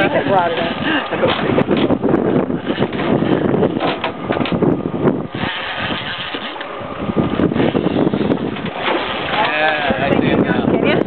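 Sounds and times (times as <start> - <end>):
boat engine running: 0.0 - 11.0
wind on microphone: 0.0 - 11.0.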